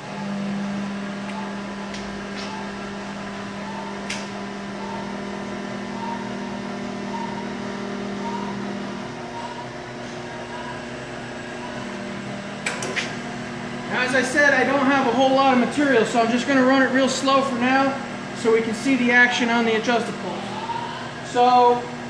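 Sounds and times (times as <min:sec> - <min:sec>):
electric motor humming: 0:00.0 - 0:22.0.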